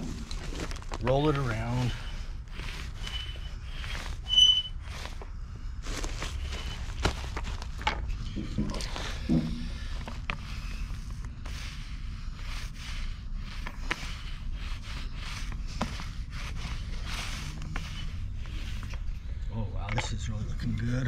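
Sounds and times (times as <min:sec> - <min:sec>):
paint roller scraping stone: 0:00.0 - 0:05.3, 0:05.9 - 0:07.8, 0:08.4 - 0:19.3
steady low rumble: 0:00.0 - 0:21.0.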